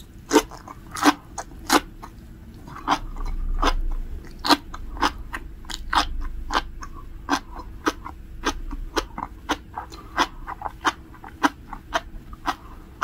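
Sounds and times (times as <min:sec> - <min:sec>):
chewing crunchy seaweed: 0:00.0 - 0:13.0.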